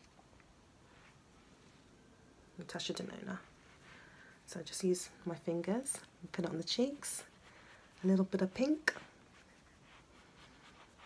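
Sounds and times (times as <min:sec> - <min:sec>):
fingertips rubbing skin: 0:09.3 - 0:11.0.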